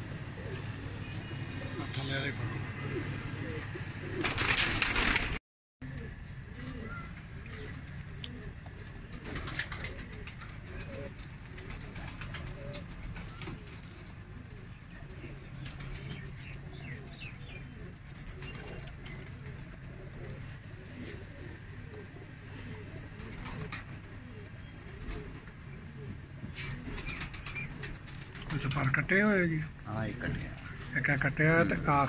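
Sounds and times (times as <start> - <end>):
pigeons cooing: 0.0 - 32.0.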